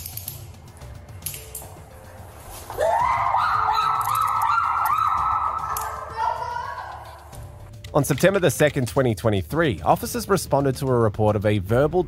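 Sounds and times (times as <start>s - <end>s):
woman wailing: 2.8s - 7.3s.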